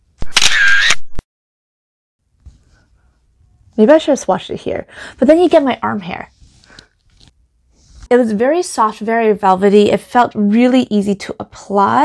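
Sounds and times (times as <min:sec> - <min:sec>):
camera shutter click: 0:00.2 - 0:01.2.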